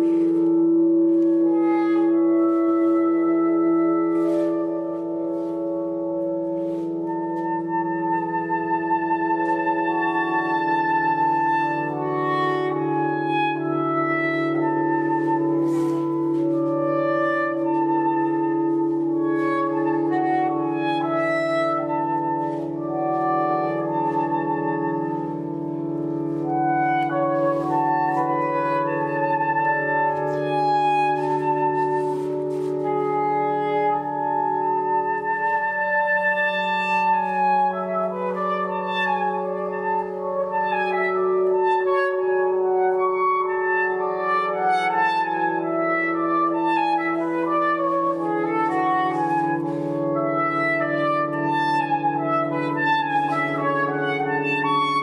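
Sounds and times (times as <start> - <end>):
soprano saxophone melody: 0.0 - 55.0.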